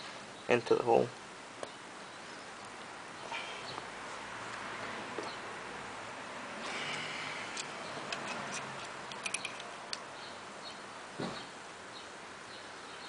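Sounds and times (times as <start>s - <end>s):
steady background hiss: 0.0s - 13.0s
light metallic clicks and taps: 7.5s - 10.1s
dull thump: 11.2s - 11.5s.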